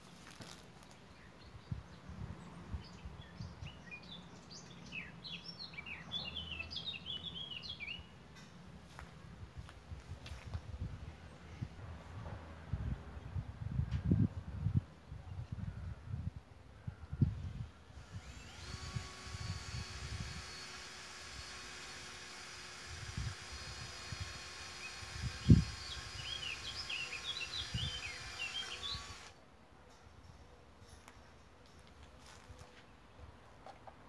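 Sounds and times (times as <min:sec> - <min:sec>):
birds chirping: 0:00.0 - 0:08.2, 0:24.4 - 0:29.3.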